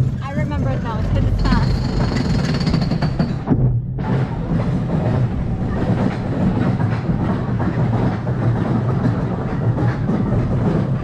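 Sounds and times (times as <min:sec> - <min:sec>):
roller coaster rattling on track: 0:00.0 - 0:11.0.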